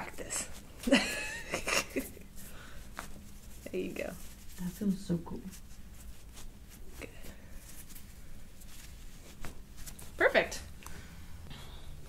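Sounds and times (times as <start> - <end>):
low room hum: 0.0 - 12.0
soft rustles of handling: 0.0 - 12.0.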